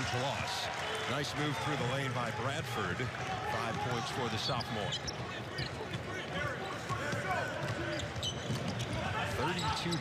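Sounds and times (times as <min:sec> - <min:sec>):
sneaker squeaks on court: 0:07.6 - 0:10.0.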